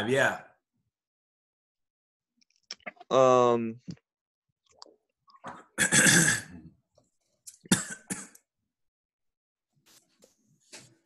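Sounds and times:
person coughing: 5.7 - 6.6, 7.7 - 8.4.

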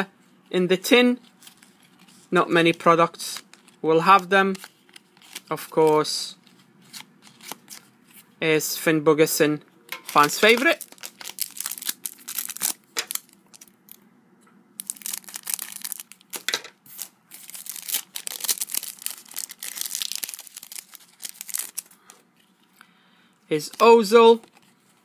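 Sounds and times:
foil pack crinkling and tearing: 10.1 - 13.8, 14.8 - 22.2.

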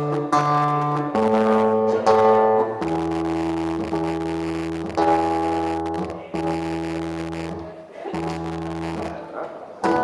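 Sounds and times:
acoustic guitar chords ringing: 0.0 - 10.0.

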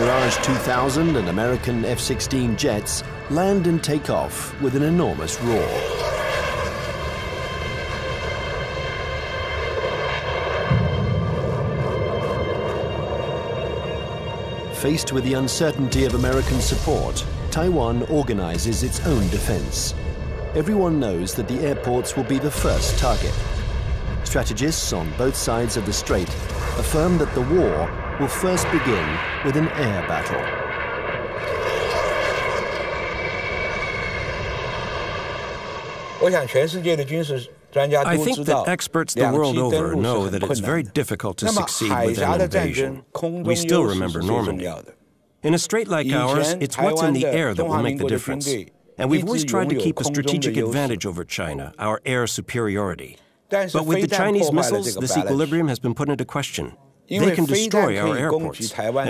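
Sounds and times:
jet engines roaring: 0.0 - 37.2.

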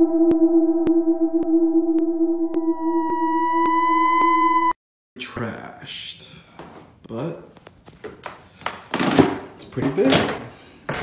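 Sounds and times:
synthesizer drone: 0.0 - 4.8.

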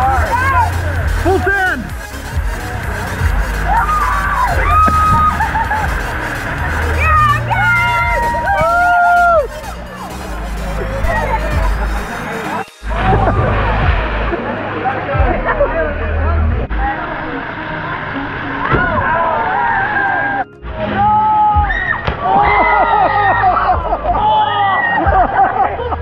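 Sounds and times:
background music with low beat: 0.0 - 16.9, 20.4 - 26.0
young voices shouting and chattering: 0.0 - 25.8.

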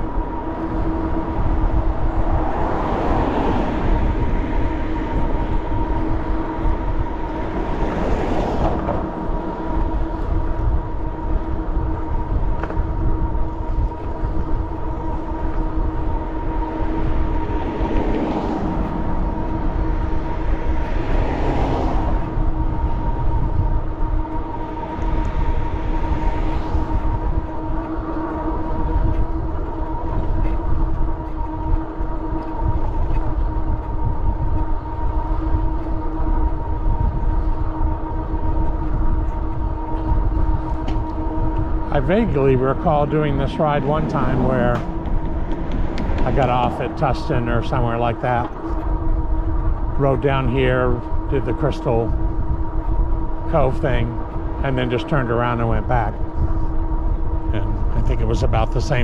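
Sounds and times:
electric motor whine: 0.0 - 59.0
wind rumble on microphone: 0.0 - 59.0.

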